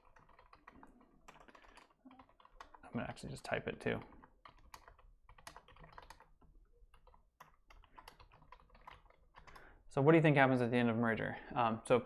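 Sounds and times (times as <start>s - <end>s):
keyboard typing: 0.0s - 9.7s.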